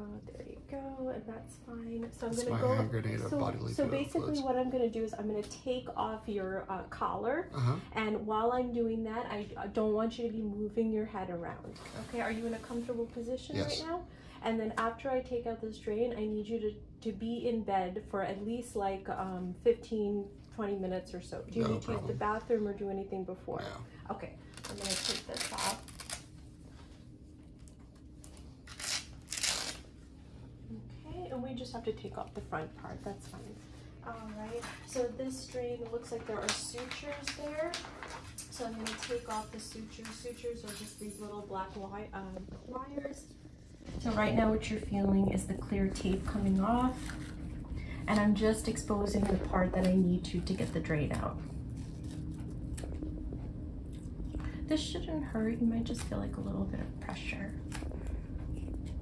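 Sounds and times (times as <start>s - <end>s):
low room hum: 0.0s - 59.0s
velcro straps ripping open: 24.5s - 26.3s, 28.3s - 29.9s.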